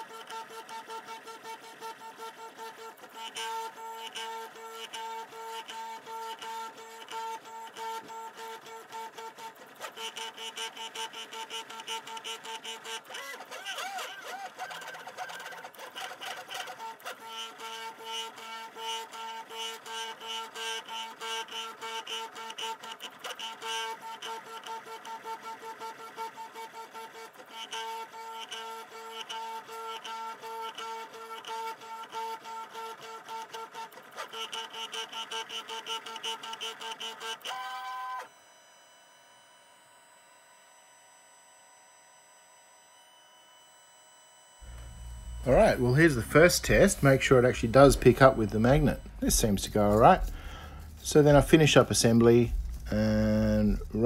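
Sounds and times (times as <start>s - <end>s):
printer stepper motors whining: 0.0s - 54.0s
faint steady hum: 38.3s - 54.0s.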